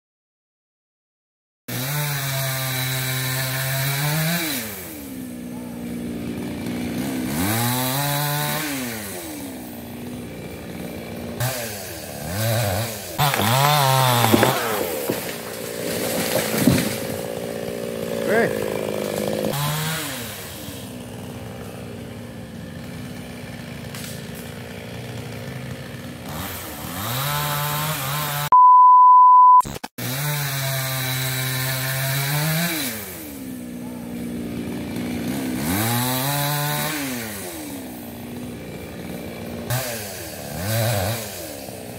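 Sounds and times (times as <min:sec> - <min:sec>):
chainsaw revving: 0:01.7 - 0:28.5, 0:30.0 - 0:41.9
electronic beep: 0:28.5 - 0:29.7.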